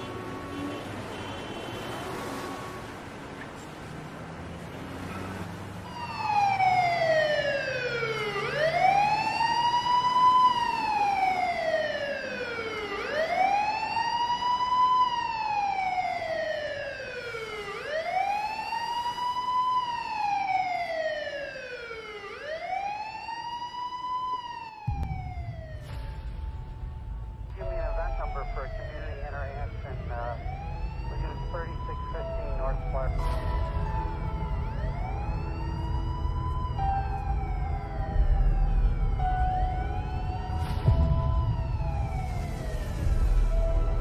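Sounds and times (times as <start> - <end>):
emergency siren wailing: 0.0 - 44.0.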